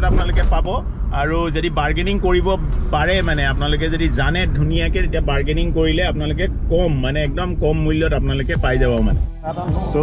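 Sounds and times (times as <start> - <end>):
car running rumble: 0.0 - 9.0
man talking: 0.0 - 10.0.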